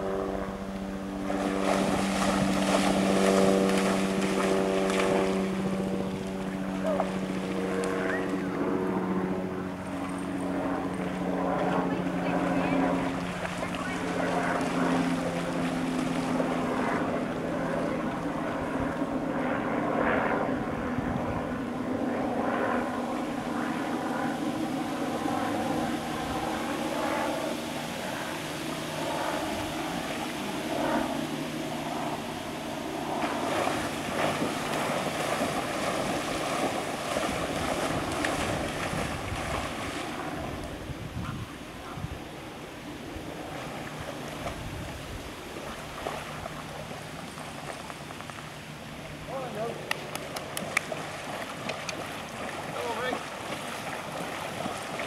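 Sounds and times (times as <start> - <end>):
engine drone: 0.0 - 55.0
dog splashing through water: 1.2 - 8.5, 33.2 - 40.5, 50.0 - 55.0.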